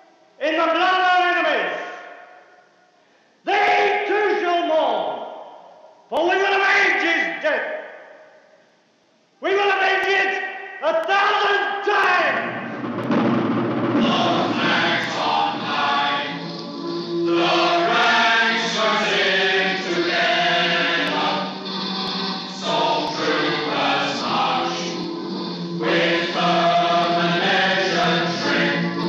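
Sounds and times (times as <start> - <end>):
choir singing a slow hymn: 14.0 - 29.0.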